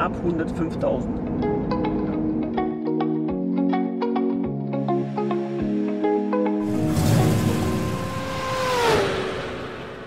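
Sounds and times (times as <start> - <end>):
rushing whoosh: 6.6 - 10.0
tone sliding down in pitch: 6.6 - 10.0.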